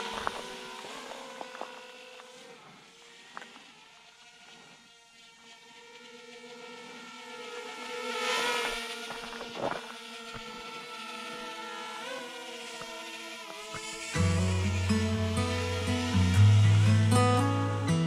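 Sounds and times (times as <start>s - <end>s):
drone propellers whining: 0.0s - 18.0s.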